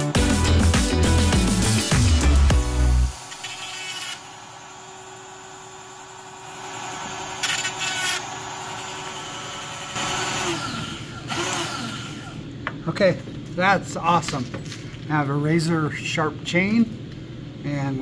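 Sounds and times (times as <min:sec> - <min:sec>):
chain sharpener whining: 0:03.2 - 0:05.0, 0:07.1 - 0:12.4.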